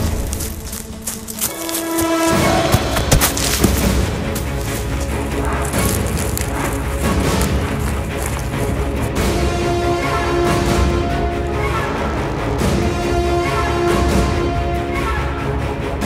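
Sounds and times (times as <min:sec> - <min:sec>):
dense sustained horror music: 0:00.0 - 0:16.0.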